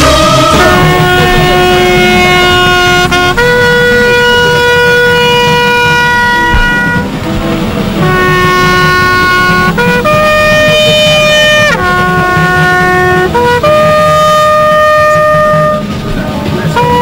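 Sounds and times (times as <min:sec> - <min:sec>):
brass horn call: 0:00.0 - 0:17.0.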